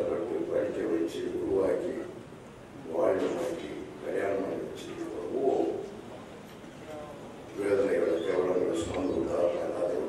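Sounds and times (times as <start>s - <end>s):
background noise: 0.0s - 10.0s.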